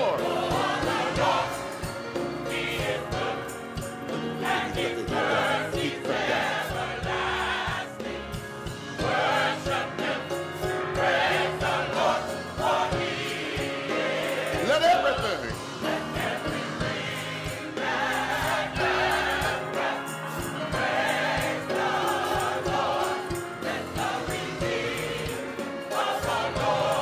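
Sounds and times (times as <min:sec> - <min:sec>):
band accompaniment with beat: 0:00.0 - 0:27.0
gospel choir singing: 0:00.0 - 0:27.0.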